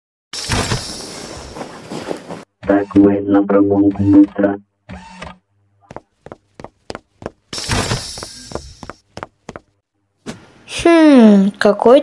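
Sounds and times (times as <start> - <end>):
cartoon footsteps: 0.4 - 10.6.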